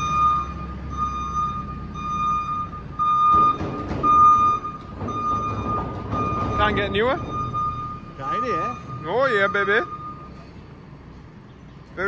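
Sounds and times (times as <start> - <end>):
electronic warning beeper: 0.0 - 10.4.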